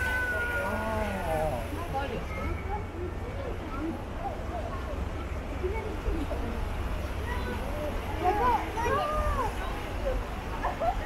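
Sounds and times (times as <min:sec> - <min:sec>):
low city rumble: 0:00.0 - 0:11.0
passersby talking: 0:00.0 - 0:11.0.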